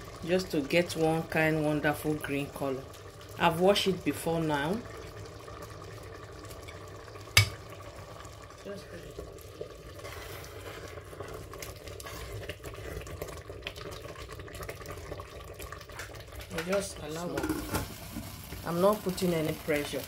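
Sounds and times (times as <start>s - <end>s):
pot simmering with low hiss: 0.0s - 20.0s
knock against steel pot: 7.4s - 7.6s
wooden spoon stirring thick mixture: 9.2s - 15.0s.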